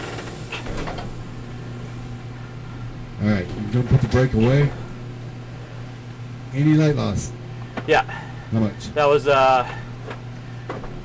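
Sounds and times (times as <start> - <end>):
machine hum and air noise: 0.0 - 11.0.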